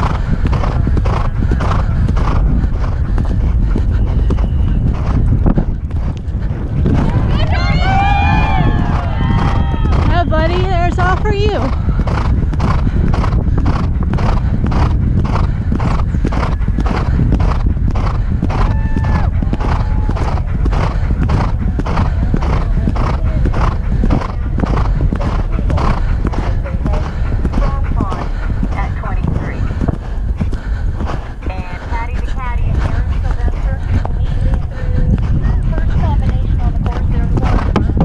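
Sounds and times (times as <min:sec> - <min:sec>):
horse hoofbeats galloping: 0:00.0 - 0:38.0
wind rumble on microphone: 0:00.0 - 0:38.0.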